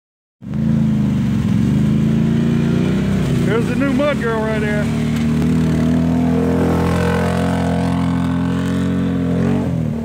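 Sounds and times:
atv engine running: 0.5s - 10.0s.

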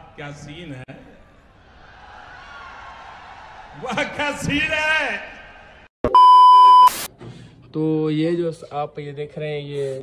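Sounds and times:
test-tone beep: 6.1s - 7.1s
burst of static: 6.7s - 7.1s.

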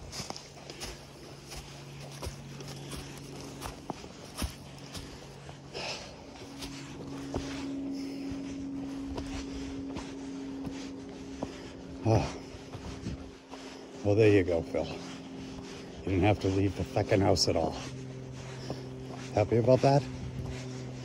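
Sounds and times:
footsteps on dirt track: 0.0s - 21.0s
footsteps on dry leaves: 0.0s - 21.0s
steady low hum: 0.0s - 21.0s.

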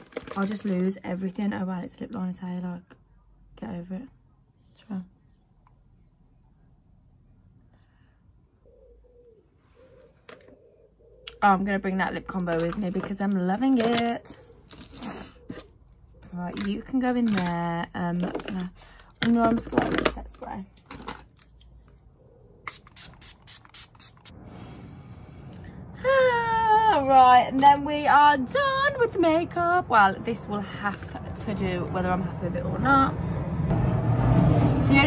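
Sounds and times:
dove cooing: 8.6s - 12.8s, 14.2s - 16.4s, 22.2s - 22.6s
spray bottle spritzes: 22.6s - 24.3s.

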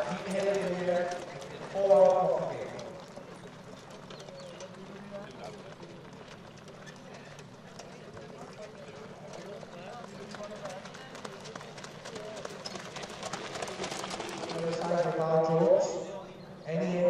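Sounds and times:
horse hoofbeats on gravel: 0.0s - 15.2s
faint background talk: 2.6s - 14.9s.

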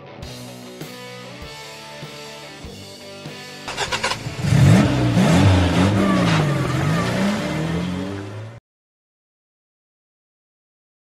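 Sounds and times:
guitar music: 0.0s - 8.4s
car engine starting and revving: 3.7s - 8.6s.

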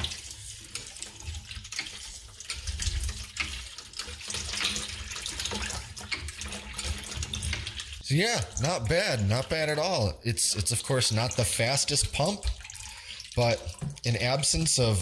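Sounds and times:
water splashing into bucket: 0.0s - 15.0s.

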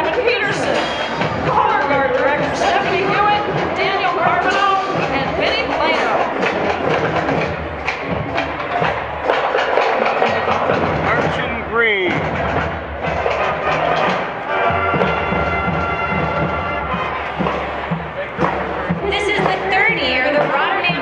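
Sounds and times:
marching drums: 0.0s - 21.0s
brass horns playing: 10.0s - 20.8s.

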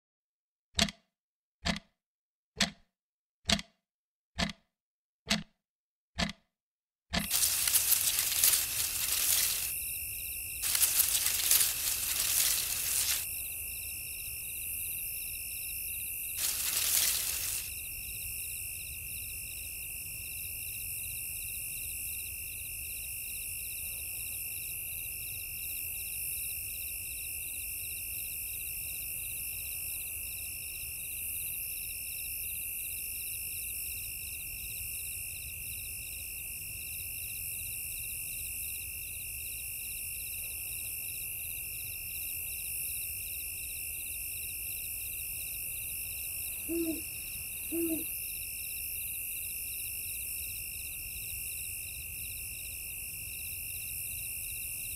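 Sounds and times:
rustling through tall grass: 7.2s - 9.8s, 10.6s - 13.3s, 16.4s - 17.7s
insects trilling: 7.2s - 19.0s, 45.0s - 49.4s
insect pulsing chirp: 7.2s - 19.5s, 45.1s - 49.4s.

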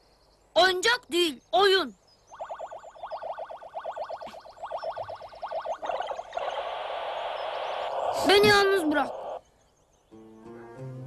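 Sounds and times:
electronic game blips: 2.3s - 9.4s.

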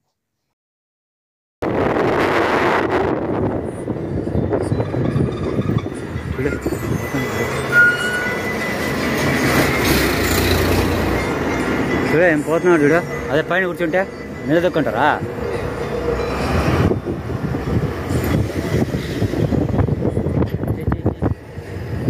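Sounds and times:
heavy lorries passing: 2.0s - 22.0s
truck driving on highway: 2.5s - 22.0s.

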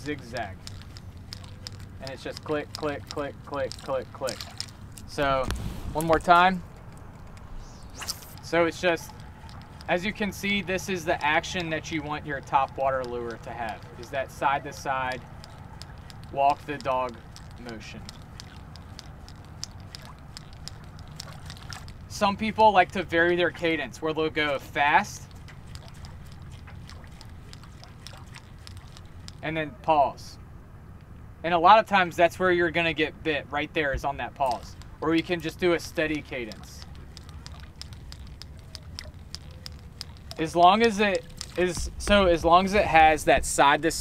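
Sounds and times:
lure clicks and small splashes: 0.0s - 29.6s, 32.1s - 44.0s
low steady rumble: 0.0s - 44.0s.

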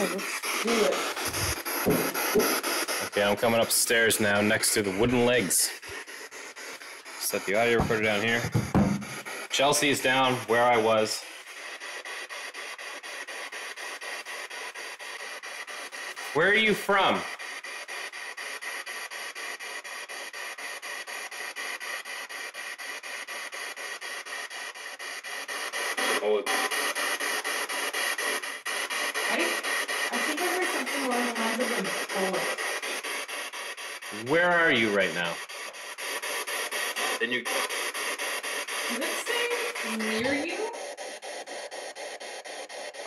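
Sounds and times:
pulsing hiss: 0.0s - 43.0s
wavering voice: 38.9s - 40.9s.

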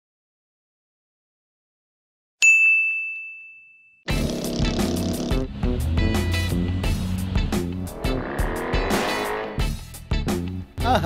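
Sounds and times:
high bell-like ding: 2.4s - 4.1s.

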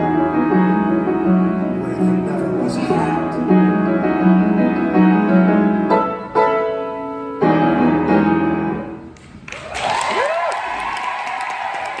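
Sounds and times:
audience applauding and cheering: 9.2s - 12.0s
person whooping: 9.8s - 12.0s.

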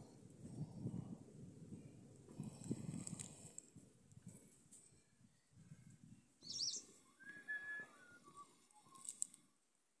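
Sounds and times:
bird chirps: 6.4s - 7.0s.

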